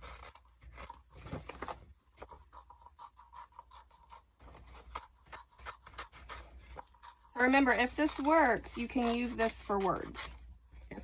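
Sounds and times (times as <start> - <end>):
paper rustling: 0.0 - 7.2
scissors snipping paper: 0.0 - 10.4.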